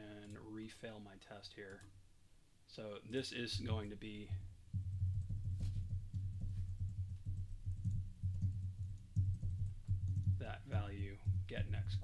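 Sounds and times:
computer keyboard typing: 0:04.8 - 0:12.0.

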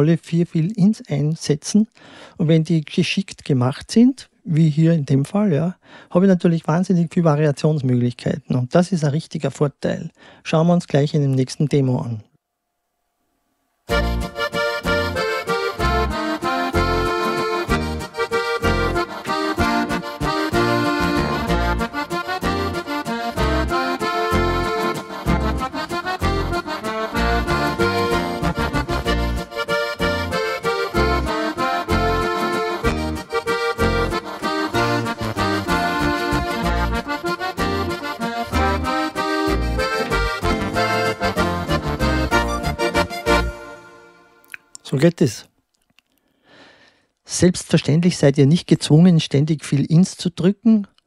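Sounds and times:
accordion-led waltz on keyboard: 0:13.9 - 0:44.5.

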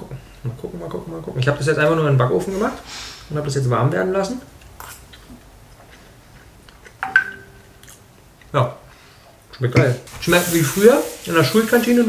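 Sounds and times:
man chewing food: 0:04.6 - 0:07.0.

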